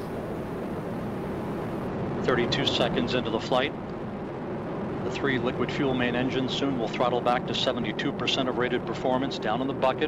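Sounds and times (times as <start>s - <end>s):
rocket engines rumbling: 0.0s - 10.0s.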